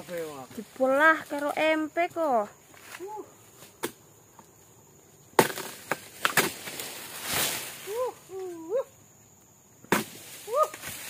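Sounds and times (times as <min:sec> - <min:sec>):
blade chopping palm stalks: 0:05.4 - 0:07.8, 0:09.9 - 0:11.0.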